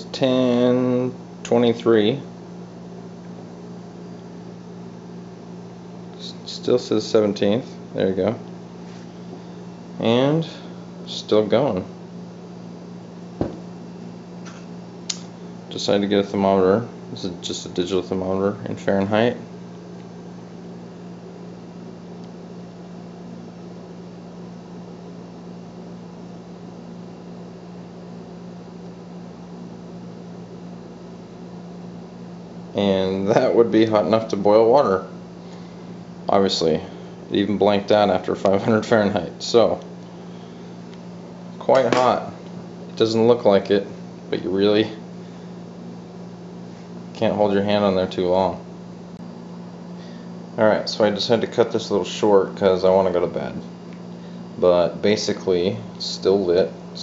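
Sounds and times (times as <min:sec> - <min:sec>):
low electrical hum: 0:00.0 - 0:57.0.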